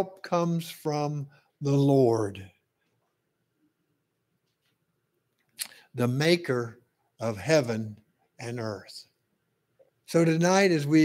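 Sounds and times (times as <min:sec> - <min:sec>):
man speaking: 0:00.0 - 0:02.6, 0:05.6 - 0:09.1, 0:10.0 - 0:11.0.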